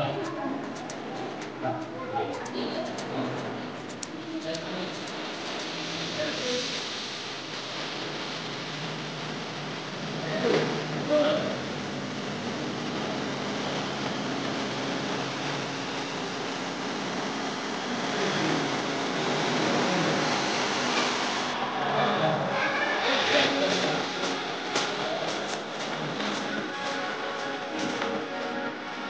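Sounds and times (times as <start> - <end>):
many people talking: 0.0 - 6.8, 21.4 - 29.0.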